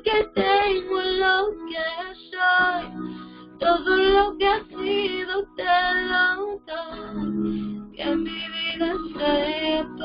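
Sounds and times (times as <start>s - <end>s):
woman singing: 0.0s - 7.4s, 8.0s - 10.0s.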